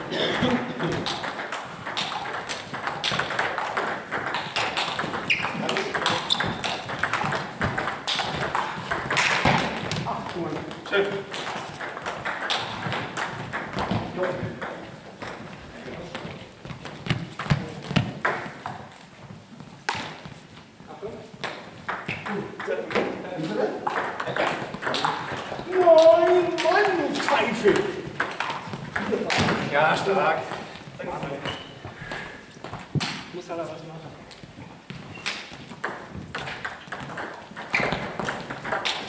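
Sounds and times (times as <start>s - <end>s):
table tennis ball clicking: 0.9s - 13.9s, 23.9s - 30.7s, 35.2s - 39.0s.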